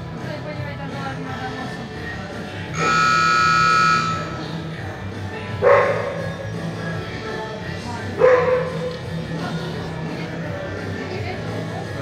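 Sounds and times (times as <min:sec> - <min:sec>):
rock music: 0:00.0 - 0:12.0
arena buzzer: 0:02.7 - 0:04.6
short sharp calls: 0:02.8 - 0:04.4.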